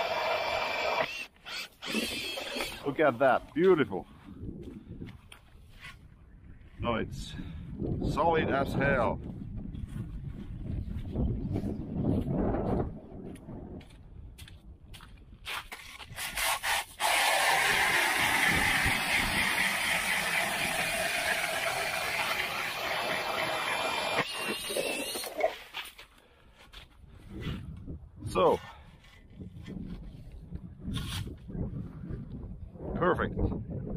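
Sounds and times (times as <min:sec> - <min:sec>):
ice auger grinding through ice: 0:00.0 - 0:03.0, 0:16.2 - 0:25.8.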